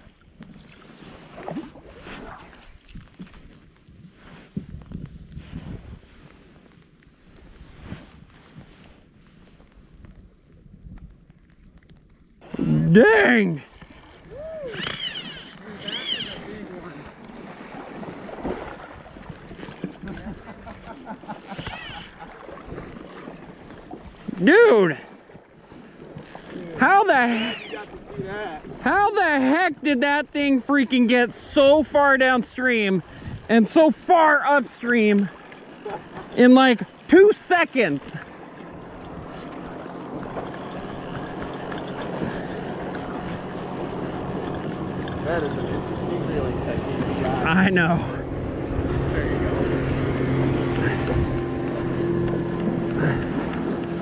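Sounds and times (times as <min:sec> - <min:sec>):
water: 0:00.0 - 0:54.0
wind: 0:00.0 - 0:54.0
wind noise: 0:02.0 - 0:06.6, 0:40.2 - 0:54.0
river flowing: 0:12.4 - 0:28.1, 0:28.7 - 0:54.0
boat motor humming: 0:12.4 - 0:54.0
fly line zipping through rod guides: 0:13.6 - 0:16.5, 0:21.3 - 0:22.2, 0:26.2 - 0:28.0, 0:35.4 - 0:37.0.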